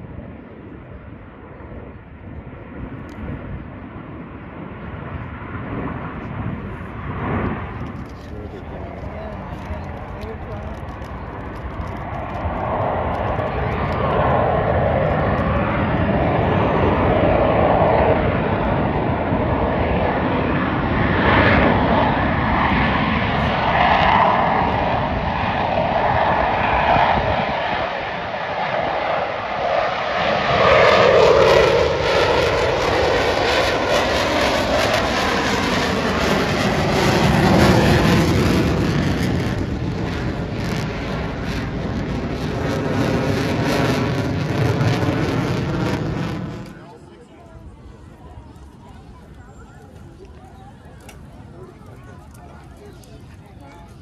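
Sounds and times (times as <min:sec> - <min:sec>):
fighter jets flying past: 0:00.0 - 0:54.0.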